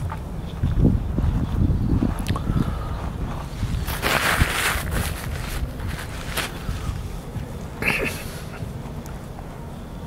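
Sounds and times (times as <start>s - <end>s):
wind rumble on microphone: 0.0s - 8.8s
paper napkin rustling: 3.6s - 7.2s.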